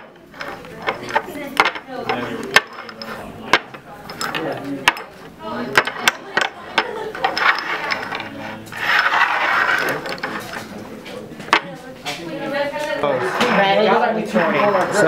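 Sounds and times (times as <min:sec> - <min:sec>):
cups clacking on wooden table: 0:00.0 - 0:10.7.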